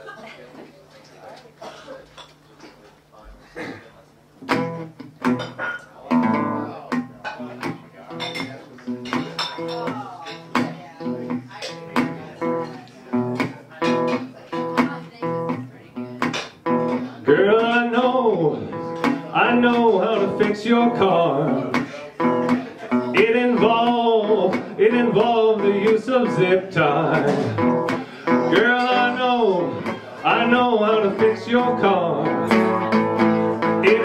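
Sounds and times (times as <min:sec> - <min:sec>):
resonator guitar blues plucking: 0:04.4 - 0:34.0
man singing: 0:17.2 - 0:34.0.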